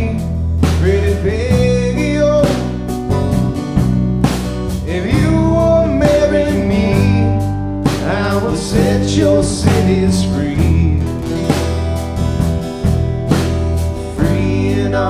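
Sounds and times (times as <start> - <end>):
country folk band music: 0.0 - 15.0.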